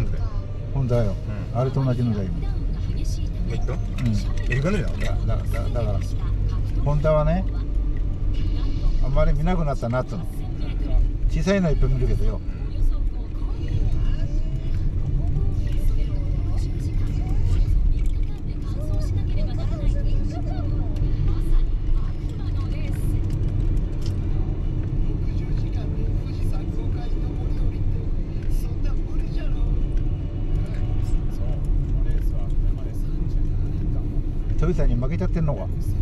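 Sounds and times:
car road and engine rumble: 0:00.0 - 0:36.0.

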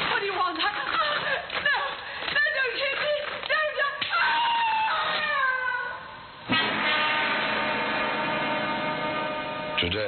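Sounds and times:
woman screaming: 0:03.6 - 0:06.1
loud sustained musical chord: 0:06.6 - 0:10.0.

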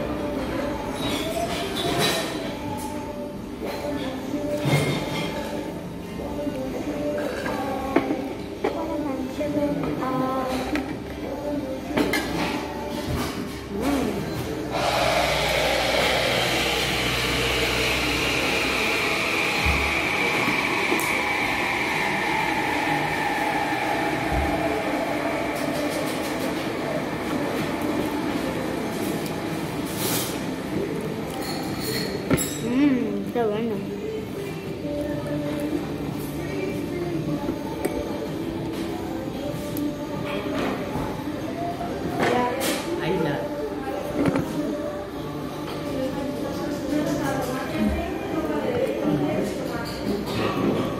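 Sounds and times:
cutlery and glass clinking: 0:01.0 - 0:02.4, 0:31.2 - 0:32.8
machine hissing and whining: 0:14.7 - 0:28.8.

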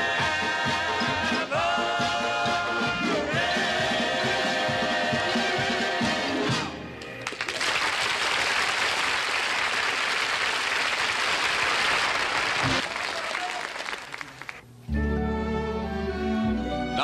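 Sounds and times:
audience applauding: 0:07.2 - 0:14.6.

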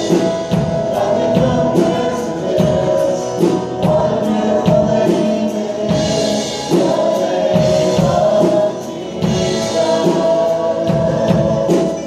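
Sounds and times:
drums: 0:00.0 - 0:12.0
guitars: 0:00.0 - 0:12.0
keyboard: 0:00.0 - 0:12.0
voices singing together: 0:00.0 - 0:12.0.

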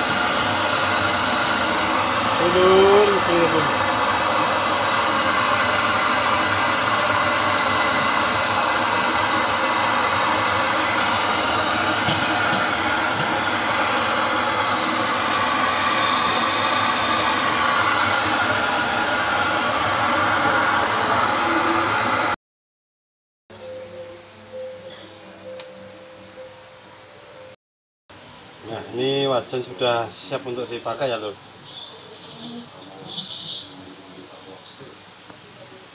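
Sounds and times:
gas stove burner running: 0:00.0 - 0:22.4.

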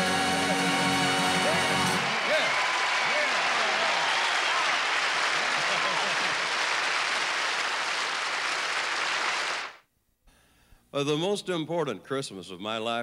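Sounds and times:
audience applauding and cheering: 0:00.4 - 0:09.8
voices shouting: 0:01.2 - 0:04.8.

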